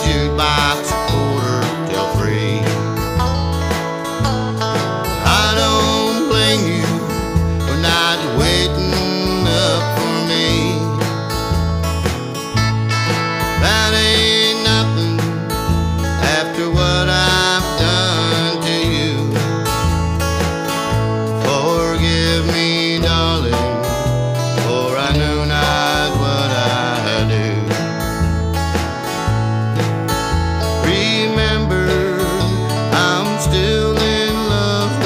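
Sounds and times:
bass line: 0.0s - 35.0s
sliding lead guitar line: 0.0s - 35.0s
strummed acoustic guitar: 0.0s - 35.0s.

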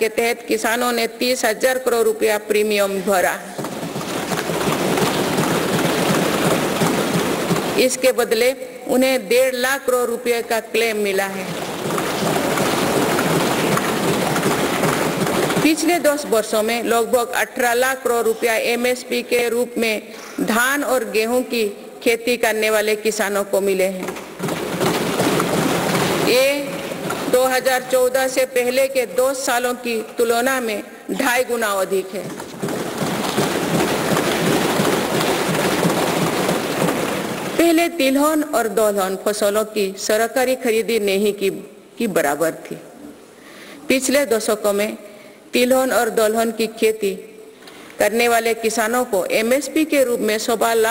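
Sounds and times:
people thumping wooden desks: 3.2s - 8.4s, 10.9s - 17.1s, 23.9s - 28.9s, 31.2s - 38.1s
crowd applauding: 3.6s - 7.8s, 11.4s - 16.0s, 24.3s - 27.4s, 32.2s - 37.6s.

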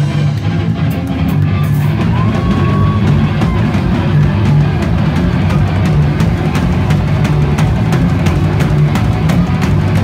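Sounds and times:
punk band playing live: 0.0s - 10.0s.

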